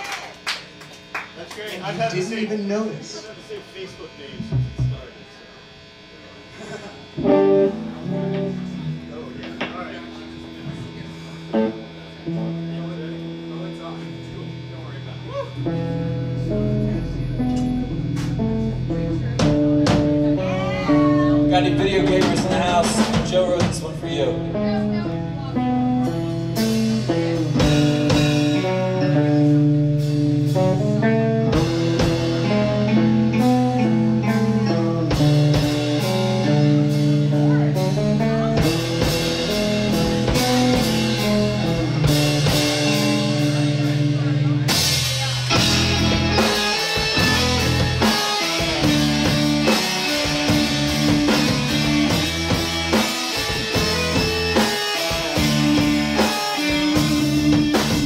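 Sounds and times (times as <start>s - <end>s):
drums: 0.0s - 58.0s
electric guitar notes: 0.0s - 58.0s
bass line: 1.8s - 58.0s.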